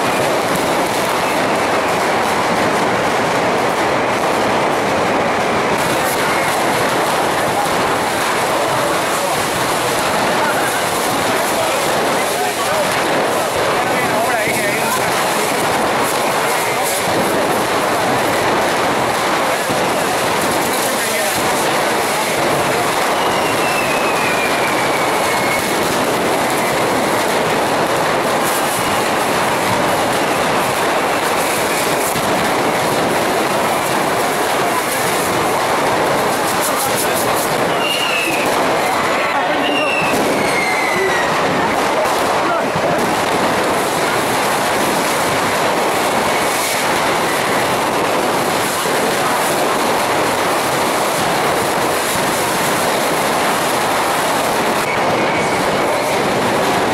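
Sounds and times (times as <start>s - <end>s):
fireworks rockets hissing and crackling: 0.0s - 56.9s
falling whistles: 23.1s - 25.7s, 37.7s - 38.5s, 39.6s - 41.3s.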